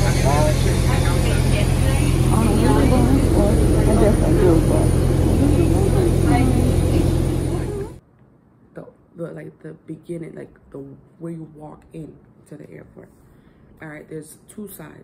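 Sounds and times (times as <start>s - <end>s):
bus engine drone from inside: 0.0s - 8.0s
passengers talking: 0.0s - 8.0s.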